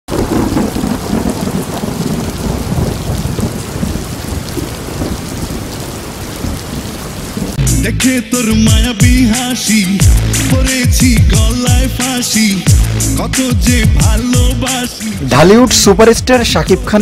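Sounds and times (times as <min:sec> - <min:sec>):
thunder rumbling: 0:00.1 - 0:07.7
heavy rain: 0:00.1 - 0:17.0
song playing: 0:07.6 - 0:17.0.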